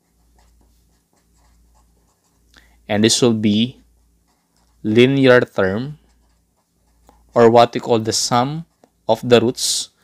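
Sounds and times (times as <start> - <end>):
marker pen scratching on paper: 0.0 - 2.5, 3.6 - 9.1.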